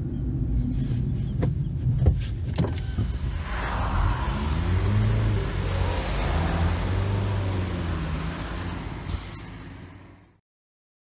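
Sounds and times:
wind and tyre noise: 0:00.0 - 0:10.3
car engine hum: 0:00.0 - 0:10.4.

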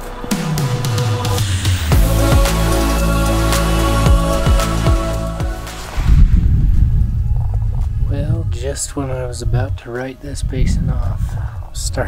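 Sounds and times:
wind buffeting microphone: 0:06.0 - 0:12.0.

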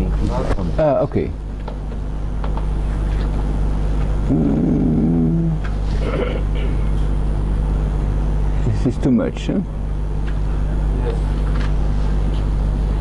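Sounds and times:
steady low hum: 0:00.0 - 0:13.0
murmured voice: 0:04.2 - 0:06.7.

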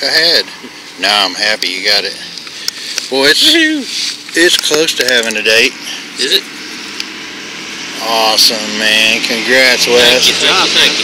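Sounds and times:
distant vehicle noise: 0:00.0 - 0:11.0.

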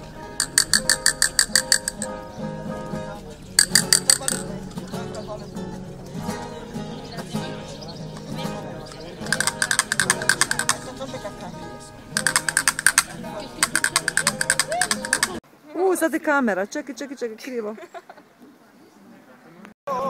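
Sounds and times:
people chattering: 0:00.0 - 0:20.0
castanets rattling rolls: 0:00.4 - 0:02.1, 0:03.6 - 0:05.0, 0:09.2 - 0:11.1, 0:12.2 - 0:15.4.

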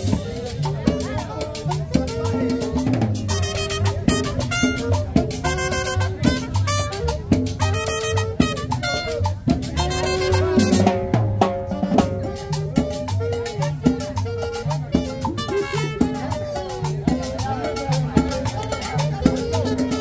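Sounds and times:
live salsa band playing: 0:00.0 - 0:20.0.

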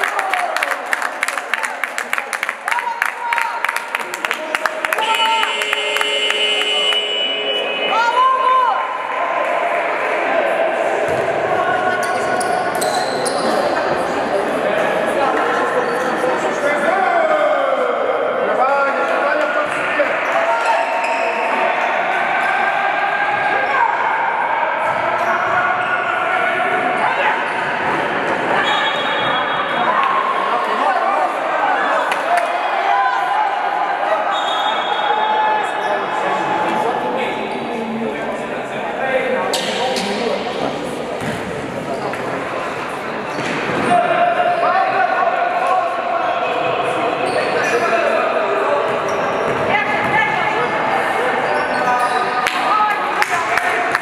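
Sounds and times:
voices and shouts: 0:02.6 - 0:40.8, 0:42.4 - 0:54.0
basketball bouncing on court: 0:41.2 - 0:41.5, 0:49.5 - 0:50.2.

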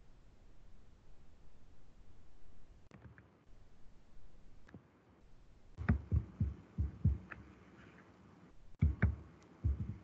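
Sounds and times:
hands tapping at computer: 0:05.8 - 0:07.4, 0:08.8 - 0:10.0.

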